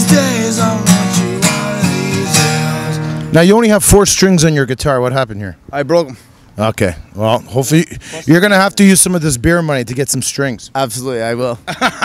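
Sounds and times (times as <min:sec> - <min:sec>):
acoustic guitar strumming: 0:00.0 - 0:03.7.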